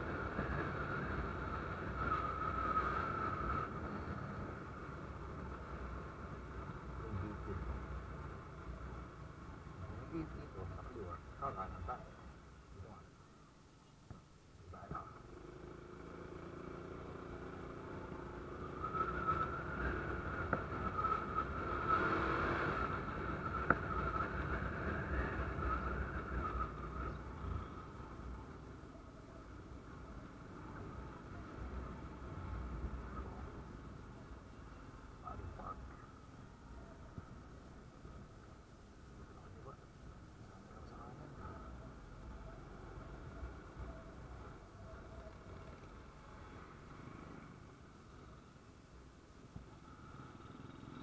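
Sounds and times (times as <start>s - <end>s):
motorcycle engine rumble: 0.0s - 51.0s
road noise: 0.0s - 51.0s.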